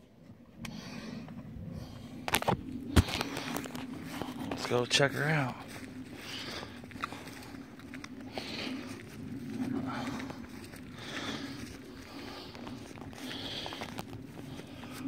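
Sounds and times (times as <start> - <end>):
footsteps in grass: 1.8 - 15.0.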